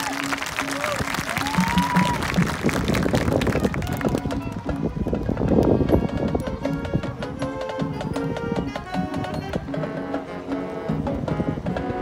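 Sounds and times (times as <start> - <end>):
marching band playing: 0.0 - 12.0.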